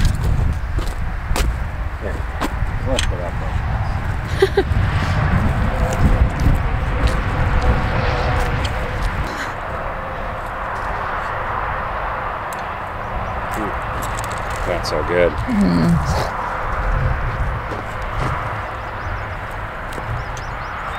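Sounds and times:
steady low rumble: 0.0s - 20.9s.

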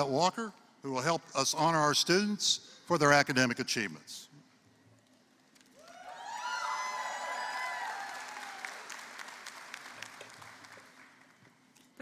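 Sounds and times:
people cheering: 5.8s - 10.4s
audience applause: 5.8s - 11.4s.

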